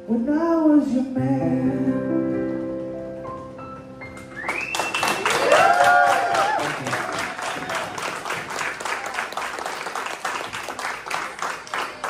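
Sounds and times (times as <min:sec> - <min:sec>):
audience clapping: 0:04.4 - 0:12.0
high cheer: 0:04.4 - 0:12.0
person whooping: 0:05.1 - 0:08.0.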